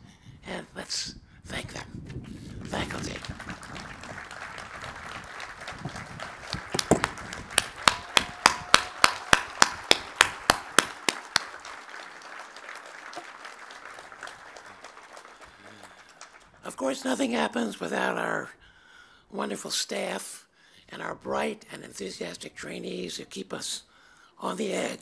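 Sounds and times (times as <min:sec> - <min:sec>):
audience applauding: 0:02.5 - 0:16.6
loud close hand claps: 0:02.6 - 0:16.5.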